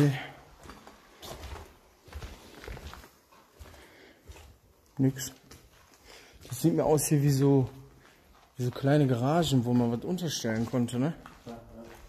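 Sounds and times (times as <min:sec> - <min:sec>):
footsteps on gritty floor: 0:00.0 - 0:12.0.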